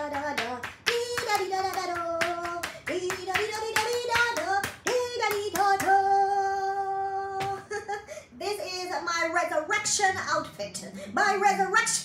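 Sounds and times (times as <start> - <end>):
hand claps: 0.0 - 6.0.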